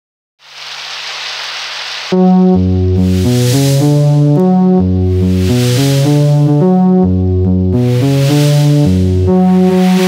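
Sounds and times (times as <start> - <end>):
rain-like hiss: 0.4 - 2.2, 3.0 - 4.0, 5.2 - 6.3, 7.8 - 10.0.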